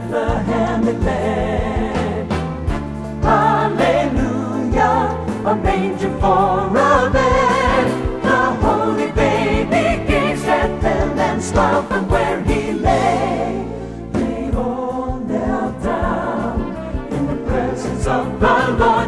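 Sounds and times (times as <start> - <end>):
choir singing: 0.0 - 2.4, 3.2 - 19.0
instrumental accompaniment: 0.0 - 19.0.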